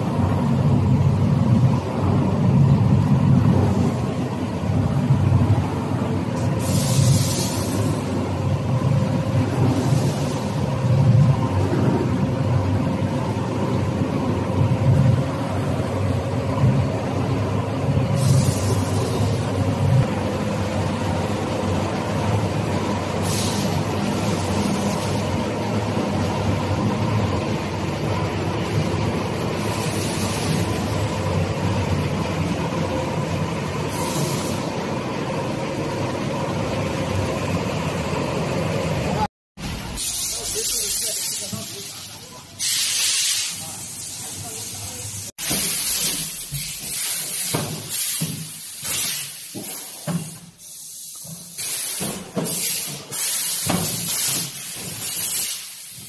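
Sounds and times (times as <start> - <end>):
factory machinery humming: 0.0 - 48.0
air hissing: 6.3 - 8.4, 9.4 - 10.8, 18.1 - 19.6, 23.1 - 25.3, 29.6 - 31.2, 33.9 - 34.8, 39.6 - 56.0.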